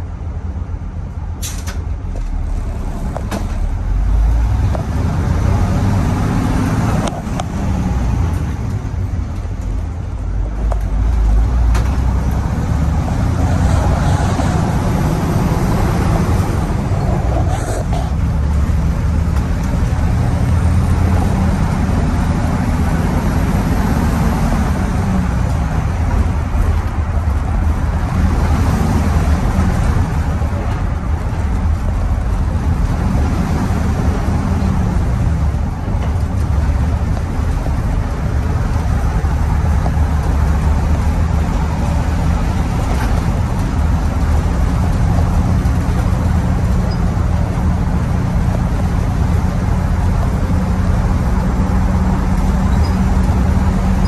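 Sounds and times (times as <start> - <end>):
diesel bus engine accelerating: 0.0 - 54.0.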